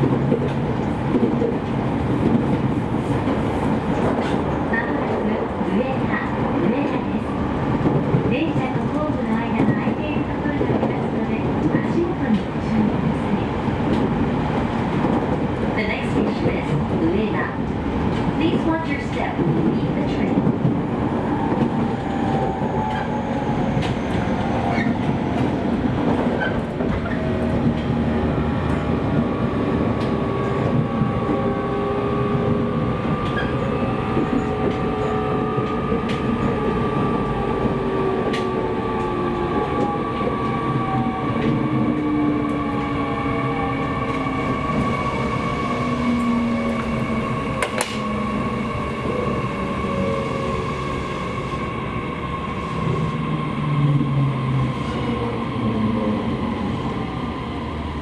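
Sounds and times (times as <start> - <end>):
train wheel and rail noise: 0.0 - 58.0.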